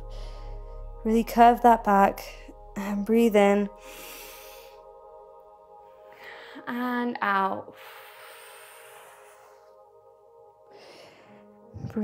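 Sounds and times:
slow sustained background music: 0.0 - 12.0.

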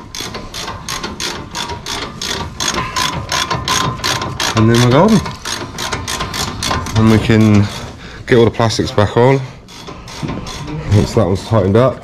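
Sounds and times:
hand ratchet clicking: 0.0 - 8.5, 9.6 - 11.3.

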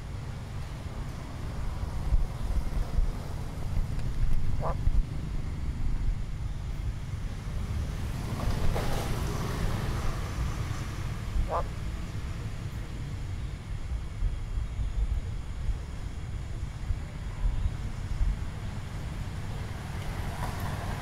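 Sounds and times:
wind rumble on microphone: 0.0 - 21.0
frog croaking: 4.5 - 4.9, 11.4 - 11.8.

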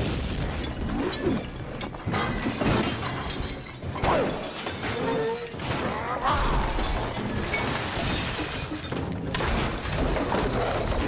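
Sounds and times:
falling debris: 0.0 - 11.0
glass shattering: 0.1 - 11.0.

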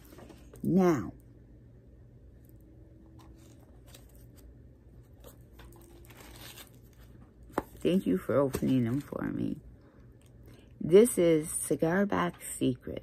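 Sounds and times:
low steady hum: 0.0 - 13.0
paper and packaging rustling: 3.0 - 9.6.

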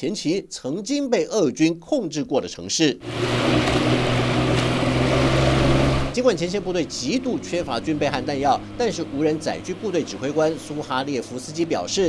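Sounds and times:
wake rushing in water: 3.0 - 6.2
boat engine humming: 3.0 - 12.0.

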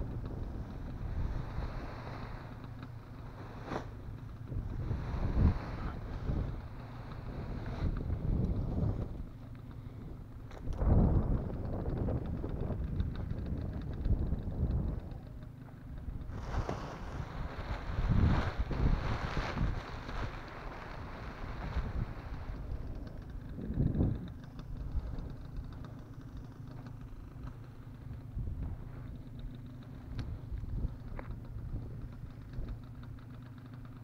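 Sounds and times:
wind buffeting microphone: 0.0 - 33.8
nylon fabric rustling: 3.2 - 7.9, 16.3 - 23.0.

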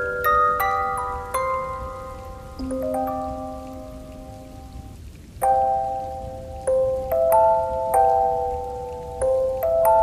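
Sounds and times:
music box melody: 0.0 - 10.0
steady rain: 0.0 - 10.0.

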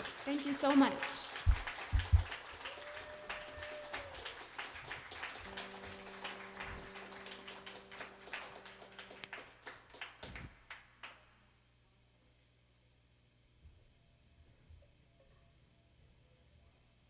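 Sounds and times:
audience clapping: 0.0 - 11.3
steady low tone: 5.4 - 9.6.

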